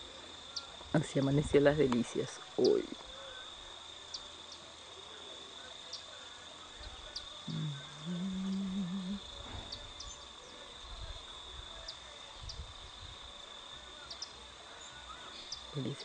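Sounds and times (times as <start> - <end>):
high-pitched insect drone: 0.0 - 16.0
low humming voice: 2.7 - 16.0.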